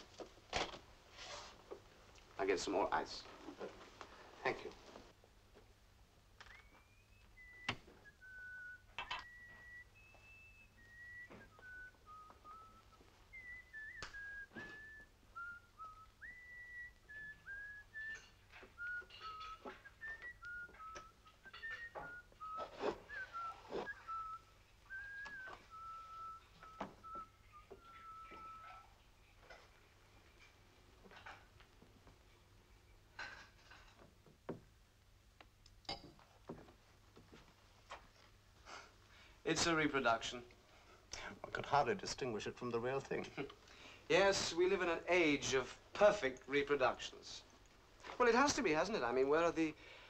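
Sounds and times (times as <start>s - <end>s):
man whistling a slow tune: 6.4s - 29.0s.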